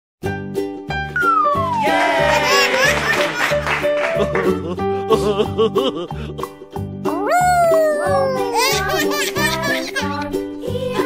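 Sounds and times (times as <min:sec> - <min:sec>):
bright children's music: 0:00.5 - 0:11.0
high tone sliding downward: 0:01.2 - 0:02.4.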